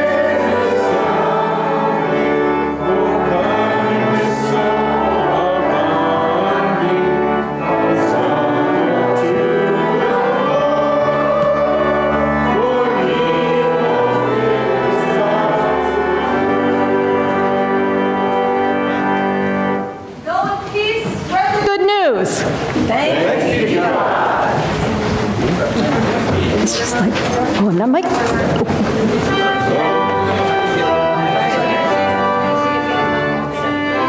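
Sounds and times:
church organ chord: 0:00.0 - 0:20.1, 0:29.2 - 0:34.0
congregation singing a hymn: 0:00.0 - 0:20.1, 0:21.3 - 0:34.0
person speaking: 0:24.6 - 0:32.1.

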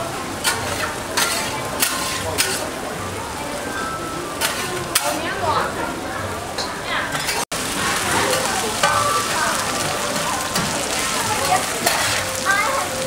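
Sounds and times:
batter sizzling on a griddle: 0:00.0 - 0:05.4, 0:07.2 - 0:13.0
metal spatulas scraping a pan: 0:00.4 - 0:02.8, 0:03.8 - 0:05.4, 0:06.6 - 0:12.4.

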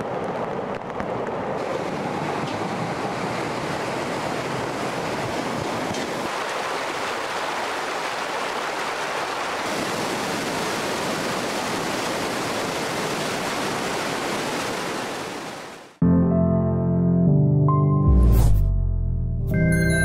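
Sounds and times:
floodwater rushing: 0:01.6 - 0:16.0.

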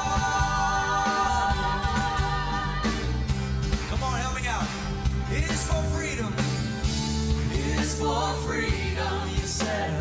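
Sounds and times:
group singing gospel: 0:00.0 - 0:03.4, 0:07.3 - 0:10.0
instrumental backing: 0:00.0 - 0:10.0.

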